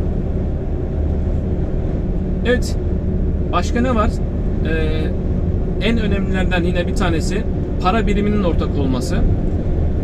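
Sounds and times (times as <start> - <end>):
car cabin road noise: 0.0 - 10.0.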